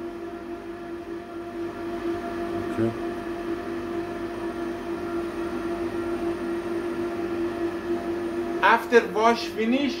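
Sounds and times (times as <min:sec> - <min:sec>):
dry-cleaning machine humming: 0:04.3 - 0:10.0.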